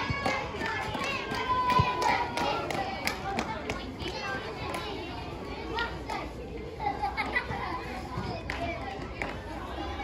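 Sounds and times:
children shouting: 0.0 - 6.3
open-air background noise: 0.0 - 10.0.

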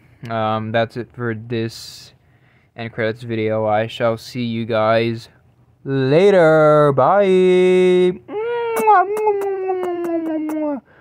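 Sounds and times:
person singing falsetto note: 8.3 - 10.8.

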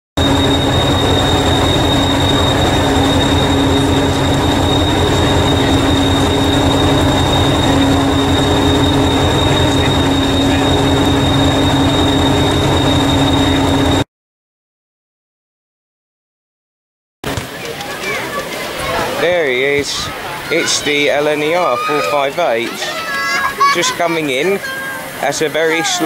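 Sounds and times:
diesel train engine throbbing: 0.2 - 14.0, 17.3 - 26.0
steady hum: 0.2 - 14.0
thin high-pitched whine: 0.2 - 14.0, 19.2 - 26.0.

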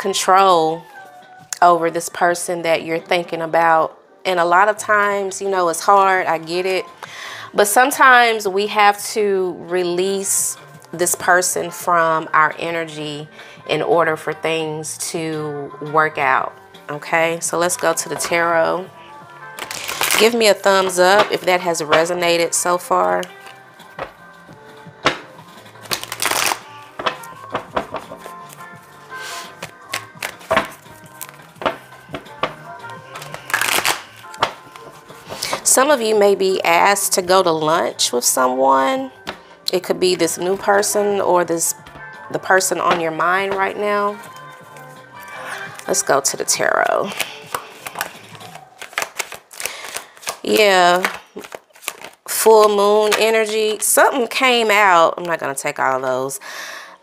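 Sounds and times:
soft background music: 0.0 - 57.0
cards shuffling: 19.6 - 22.1, 25.0 - 35.7, 46.8 - 52.3
cards tapping and clicking: 23.2 - 24.2, 25.0 - 28.7, 29.3 - 35.7, 47.1 - 52.2.

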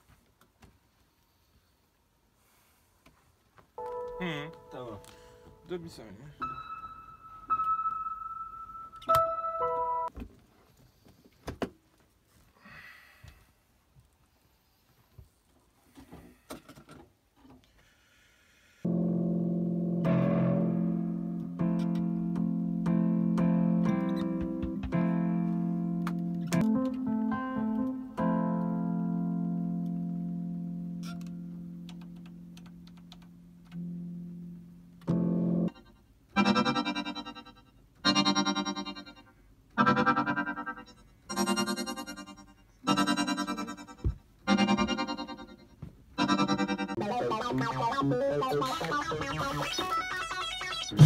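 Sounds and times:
sustained keyboard chord: 3.8 - 10.1, 18.9 - 39.2, 39.8 - 49.9.

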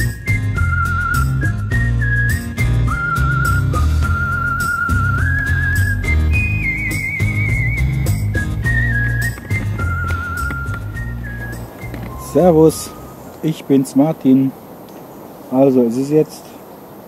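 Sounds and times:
bass line: 0.0 - 13.3
whistled melody: 0.0 - 13.4
steady beat: 6.7 - 13.0.

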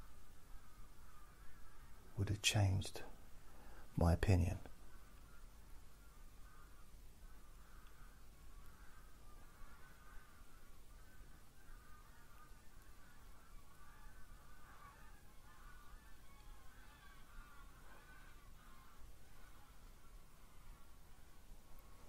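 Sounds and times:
geese honking: 4.8 - 22.0.

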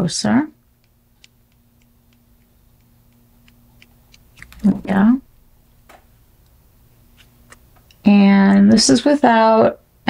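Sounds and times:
faint low hum: 0.0 - 10.0.

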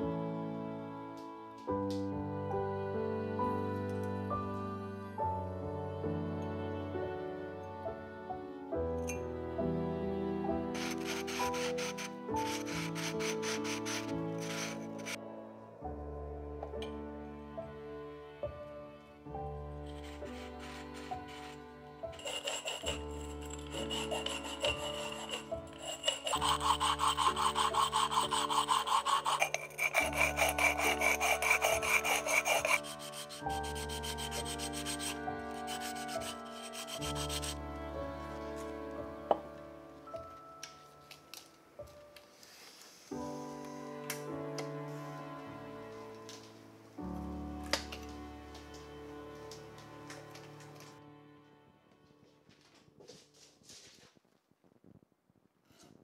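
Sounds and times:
soft background music: 0.0 - 54.0
sandpaper rasping on glass: 10.8 - 15.2, 19.9 - 37.6.

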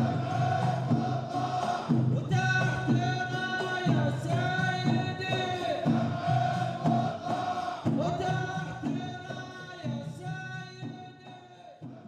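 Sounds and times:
men chanting together: 0.0 - 10.2, 10.8 - 12.0
drum strokes: 0.0 - 12.0.

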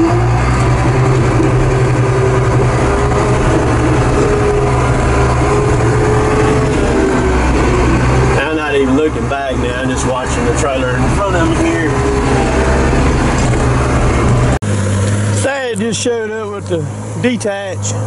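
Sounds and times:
steady tone: 0.0 - 17.3
diesel engine running under load: 0.0 - 18.0.

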